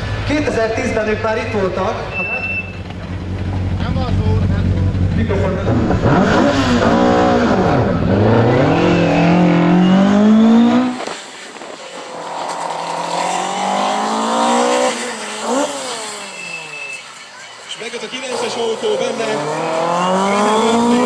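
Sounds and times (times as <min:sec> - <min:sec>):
rally car engine revving: 0:00.0 - 0:16.9, 0:18.1 - 0:21.0.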